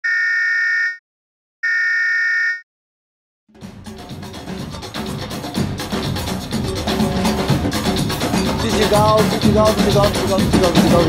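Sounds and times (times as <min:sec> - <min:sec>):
electronic warning buzzer beeps: 0:00.0 - 0:01.0, 0:01.6 - 0:02.6
music with drums: 0:03.6 - 0:11.0.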